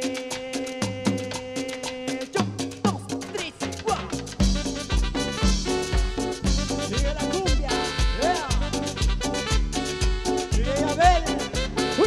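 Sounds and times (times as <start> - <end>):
live cumbia band playing: 0.0 - 12.0
heavy bass beat: 2.8 - 12.0.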